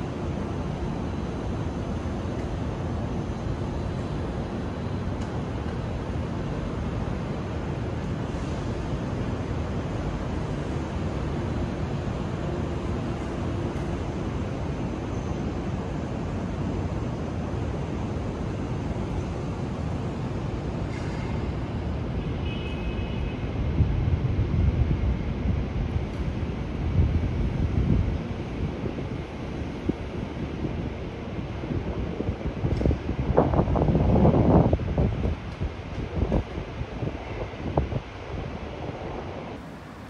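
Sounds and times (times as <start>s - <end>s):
wind buffeting microphone: 23.7s - 39.6s.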